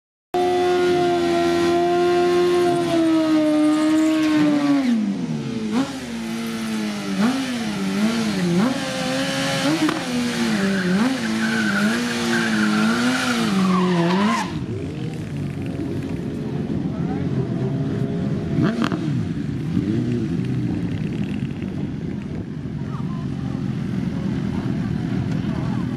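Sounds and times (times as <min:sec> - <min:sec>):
motorcycle engine revving: 0:00.4 - 0:25.9.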